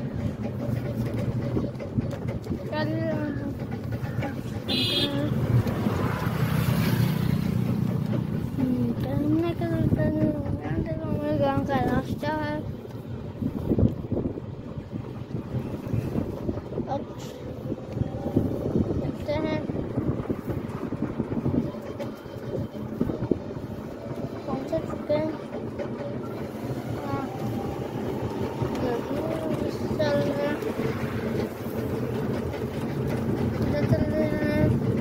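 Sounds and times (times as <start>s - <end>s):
low road rumble: 0.0s - 35.0s
wind buffeting microphone: 0.0s - 35.0s.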